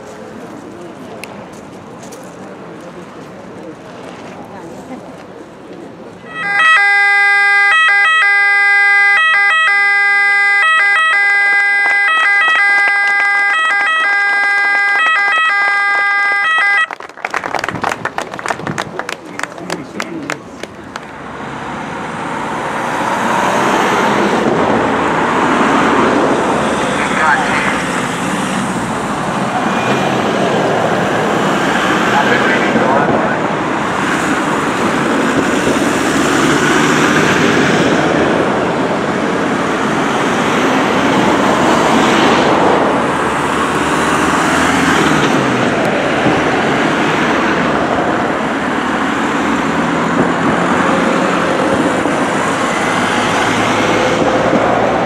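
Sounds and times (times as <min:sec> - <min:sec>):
emergency vehicle siren: 0:06.3 - 0:17.0, 0:22.5 - 0:38.4, 0:39.0 - 0:55.0
pickup trucks driving past: 0:17.4 - 0:55.0.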